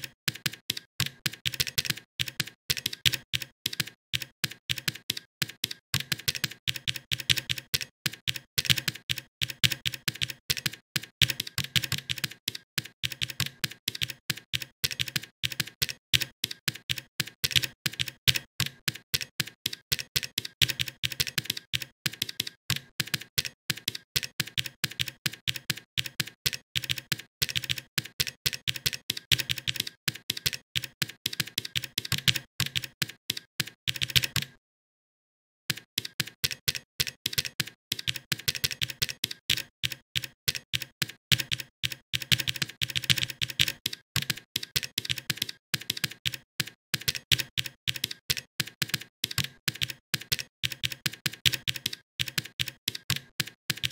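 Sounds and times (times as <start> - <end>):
rapid keyboard typing: 0.0 - 34.5, 35.7 - 53.9.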